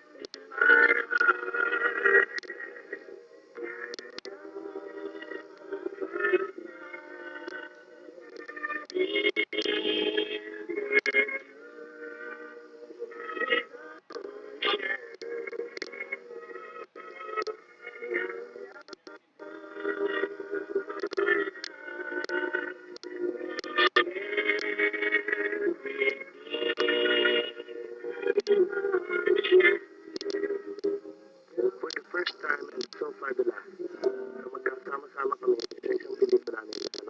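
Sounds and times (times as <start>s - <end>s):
instrumental backing: 31.6s - 37.0s.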